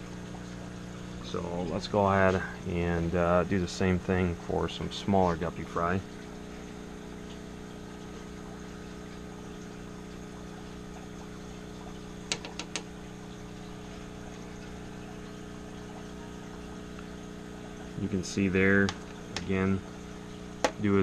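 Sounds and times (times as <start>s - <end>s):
aquarium equipment hum: 0.0s - 21.0s.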